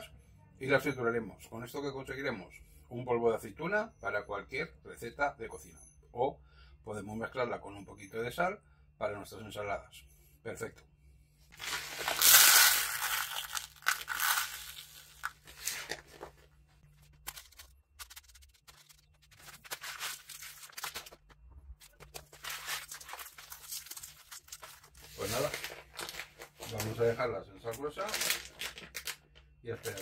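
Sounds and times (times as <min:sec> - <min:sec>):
olives and salt crunching in tub: 0:11.6 - 0:16.1.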